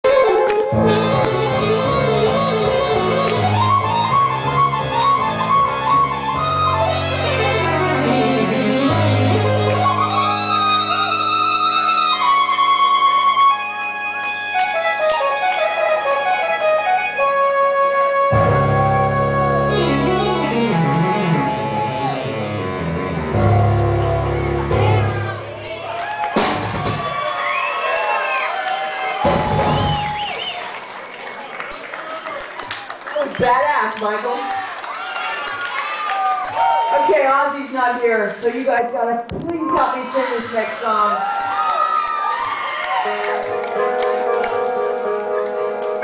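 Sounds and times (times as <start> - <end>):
live rock band playing: 0.0 - 27.2, 43.0 - 46.0
bending guitar note: 0.1 - 15.6, 18.3 - 25.7.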